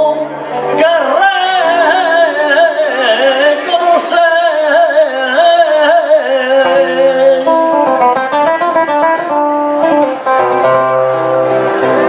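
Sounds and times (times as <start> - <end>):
flamenco guitar solo: 0.0 - 12.0.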